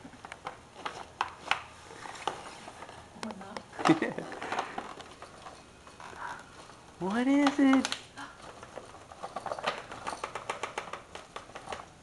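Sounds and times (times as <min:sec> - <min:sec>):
gift bag rustling and crinkling: 0:03.8 - 0:10.4.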